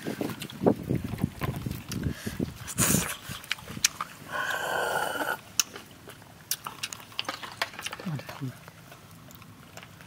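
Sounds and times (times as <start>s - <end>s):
wet chewing noises: 0.0s - 10.0s
loud slurp: 1.5s - 5.4s.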